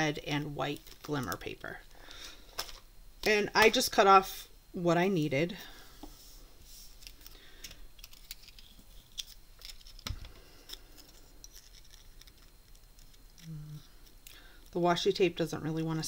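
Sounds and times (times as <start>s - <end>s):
paper rustling and clicks: 7.0s - 13.5s.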